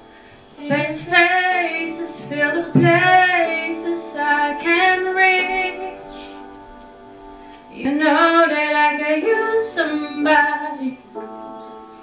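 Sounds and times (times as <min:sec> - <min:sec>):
quiet steady accompaniment: 0:00.0 - 0:12.0
woman singing into a microphone: 0:00.6 - 0:06.5, 0:07.6 - 0:11.3.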